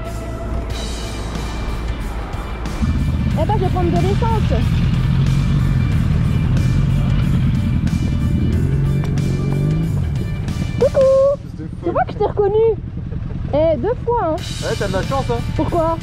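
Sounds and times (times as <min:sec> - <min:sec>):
background music: 0:00.0 - 0:12.9, 0:13.5 - 0:16.0
motorcycle engine running: 0:00.0 - 0:16.0.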